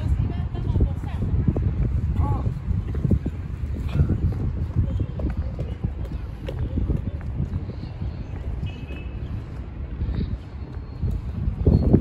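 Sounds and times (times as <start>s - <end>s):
footsteps on stone paving: 0.0s - 12.0s.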